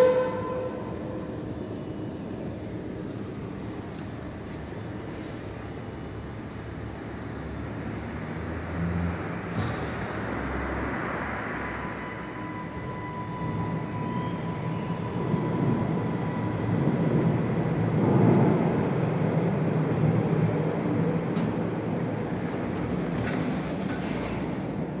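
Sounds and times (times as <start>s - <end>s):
lift mechanical rumble and hum: 0.0s - 8.0s, 11.8s - 25.0s
lift doors clicking: 21.3s - 25.0s.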